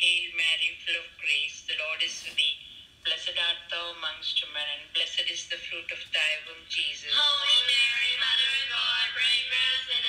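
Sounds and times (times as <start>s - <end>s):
person singing with vibrato: 7.0s - 10.0s.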